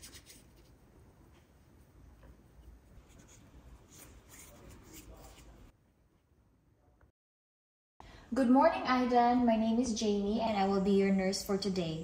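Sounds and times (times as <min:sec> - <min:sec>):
hands rubbing together: 0:03.0 - 0:05.7.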